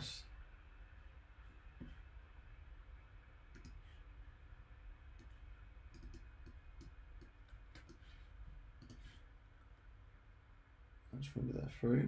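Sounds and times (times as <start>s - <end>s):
computer mouse clicks: 3.5s - 3.8s, 5.2s - 8.1s, 8.8s - 9.2s.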